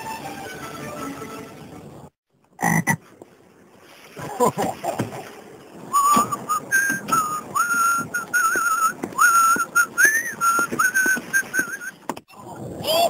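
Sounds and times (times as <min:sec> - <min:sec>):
person whistling a tune: 0:05.9 - 0:12.0
soft irregular knocks: 0:06.1 - 0:12.2.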